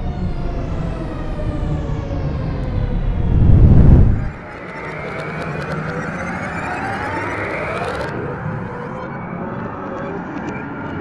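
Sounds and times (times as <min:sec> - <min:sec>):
rising multi-pitch whine: 0:00.0 - 0:10.3
low rumble: 0:01.5 - 0:04.6
falling electronic tones: 0:02.5 - 0:09.2.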